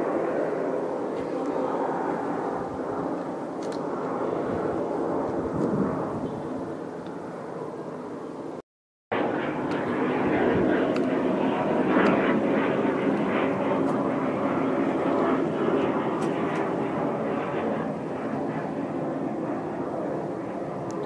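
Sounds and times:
airplane flying overhead: 0:00.0 - 0:21.0.

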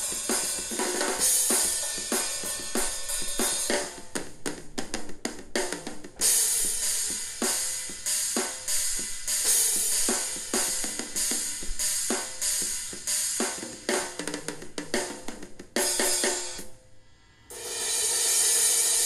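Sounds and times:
drum fill: 0:00.0 - 0:16.8
rock drum kit beat: 0:00.0 - 0:16.8, 0:17.5 - 0:19.0
cymbal crash: 0:17.4 - 0:19.0.

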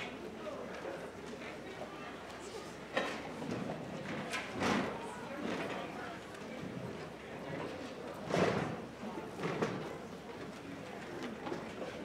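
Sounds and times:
murmur of audience: 0:00.0 - 0:12.0.

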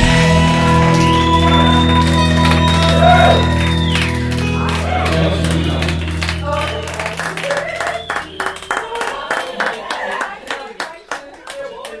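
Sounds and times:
hands clapping: 0:00.0 - 0:12.0
voices talking: 0:01.2 - 0:12.0.

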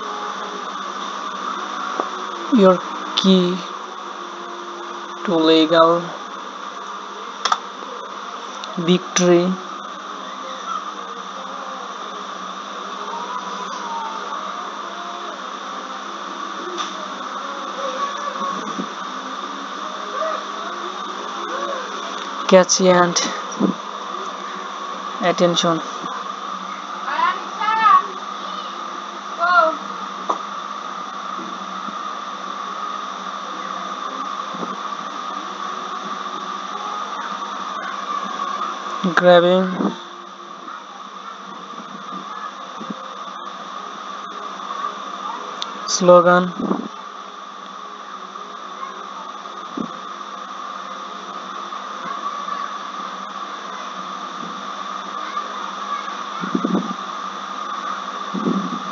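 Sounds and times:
constant hum: 0:00.0 - 0:58.9
whirring hiss: 0:00.0 - 0:58.9.

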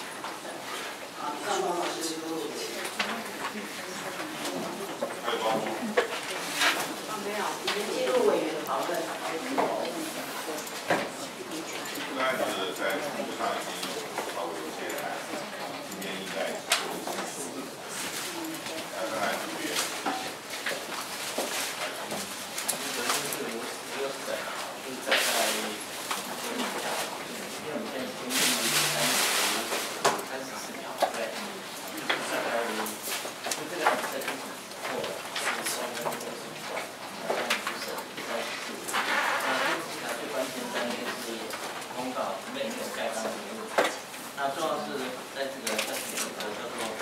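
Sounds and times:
murmur of people talking: 0:00.0 - 0:47.0.

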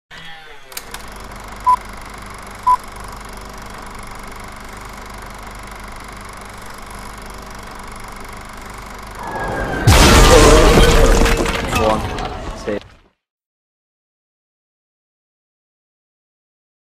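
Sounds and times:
rumble and crash of crumbling debris: 0:09.9 - 0:13.1.

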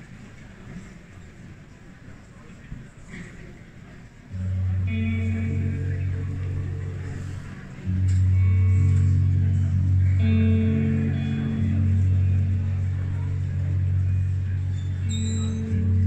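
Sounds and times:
bass guitar low notes: 0:04.3 - 0:16.0
keyboard chords: 0:04.4 - 0:16.0.

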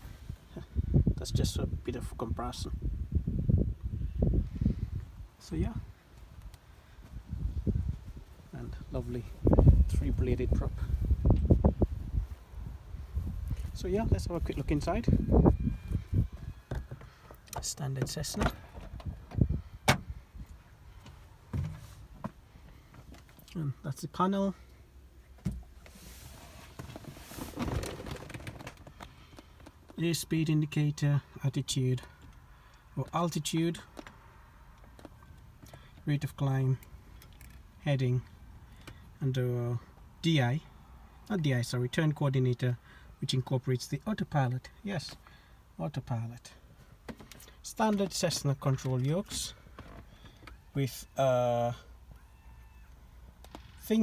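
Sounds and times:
wind buffeting microphone: 0:02.7 - 0:05.9, 0:07.1 - 0:16.9, 0:18.5 - 0:20.5
rustling with clicks and creaks: 0:13.3 - 0:19.6, 0:20.4 - 0:23.7, 0:25.3 - 0:39.2, 0:46.2 - 0:54.0.

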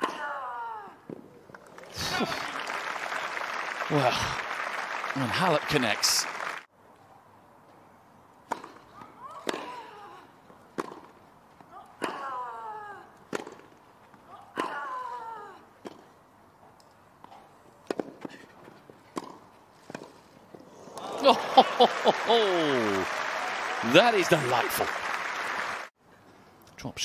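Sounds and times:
tennis ball bounces: 0:08.4 - 0:09.9, 0:10.7 - 0:11.2, 0:13.3 - 0:13.8, 0:17.2 - 0:18.4, 0:19.1 - 0:20.2.

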